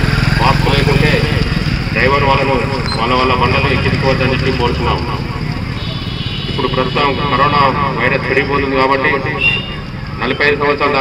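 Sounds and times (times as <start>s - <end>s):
road traffic rumble: 0.0s - 11.0s
man speaking into a microphone: 0.4s - 5.2s, 6.5s - 11.0s.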